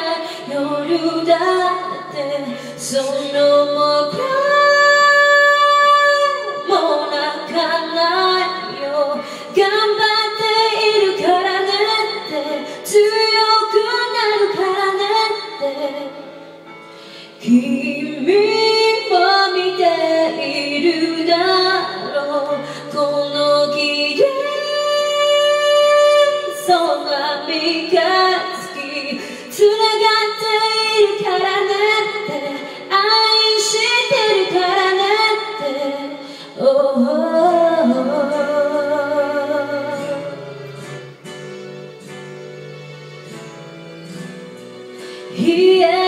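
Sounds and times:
woman singing pop ballad: 0.0 - 16.3, 17.1 - 40.4, 45.3 - 46.0
backing music: 37.4 - 46.0.

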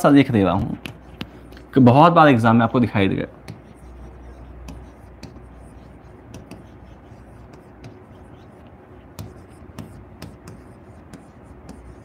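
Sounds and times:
steady low hum: 0.0 - 12.0
stylus taps: 0.6 - 1.7
stylus scratching on glass: 3.5 - 12.0.

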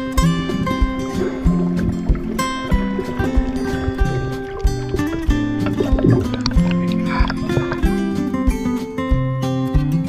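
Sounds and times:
music with held notes and beat: 0.0 - 10.0.

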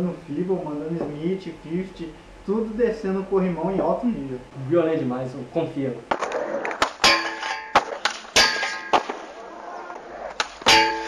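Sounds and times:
skateboard striking metal handrail: 6.1 - 9.4, 10.3 - 11.0
metal rail ringing: 7.0 - 9.1, 10.6 - 11.0.

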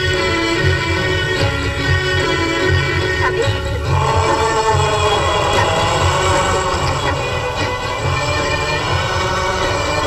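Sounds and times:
orchestral film song music: 0.0 - 10.0.

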